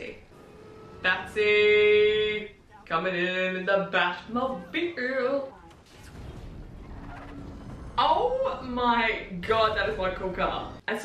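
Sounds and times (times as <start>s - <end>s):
low rumble of car driving: 0.0s - 4.7s, 5.6s - 10.8s.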